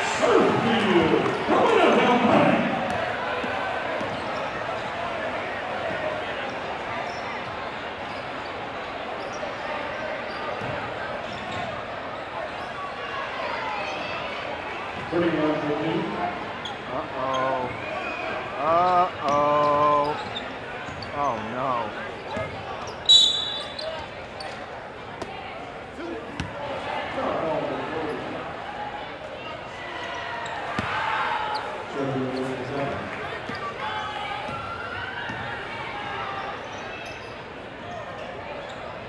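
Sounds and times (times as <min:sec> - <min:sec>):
crowd noise: 0:00.0 - 0:39.0
referee's whistle: 0:23.0 - 0:24.0.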